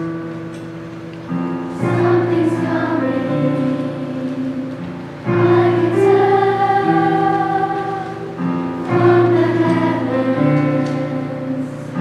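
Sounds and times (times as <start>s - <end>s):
digital piano: 0.0s - 12.0s
choir singing held chords: 1.3s - 12.0s.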